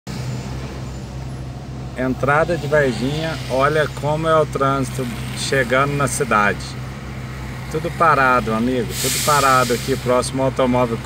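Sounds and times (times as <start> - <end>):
car engine idling: 0.1 - 11.0.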